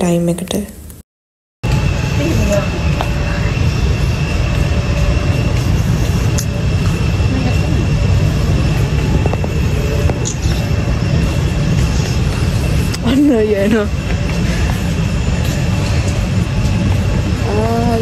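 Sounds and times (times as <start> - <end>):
supermarket background rumble: 1.6 - 18.0.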